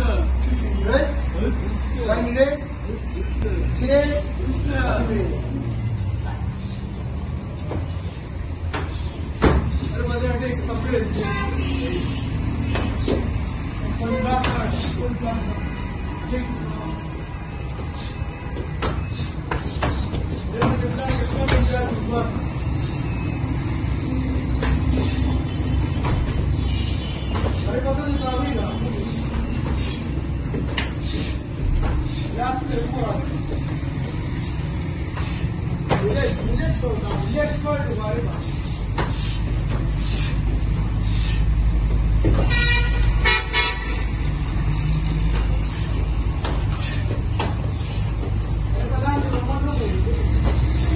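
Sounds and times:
slaps of kicks and punches: 8.7s - 9.8s
short pitched honk: 42.4s - 44.1s.

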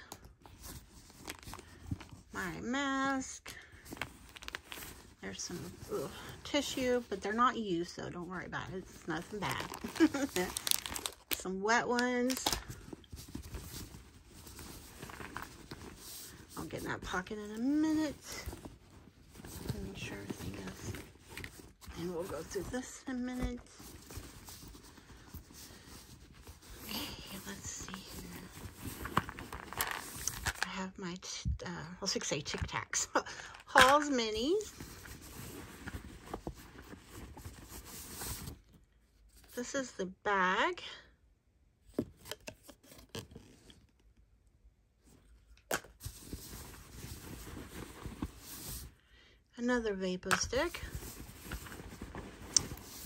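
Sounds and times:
rustling inside a handbag: 0.0s - 30.9s, 32.0s - 39.6s, 42.0s - 44.2s, 44.9s - 49.0s, 50.5s - 53.0s.

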